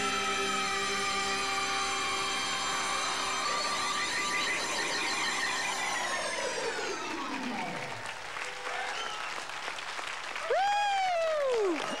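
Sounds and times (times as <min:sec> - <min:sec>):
long pitched wail: 0:00.0 - 0:07.1
audience applauding: 0:02.1 - 0:12.0.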